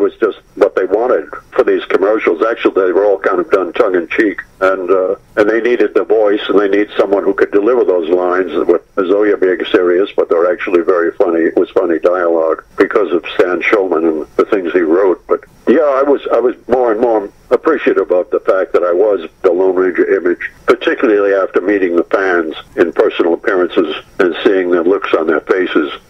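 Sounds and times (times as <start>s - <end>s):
man talking over telephone: 0.0s - 26.0s.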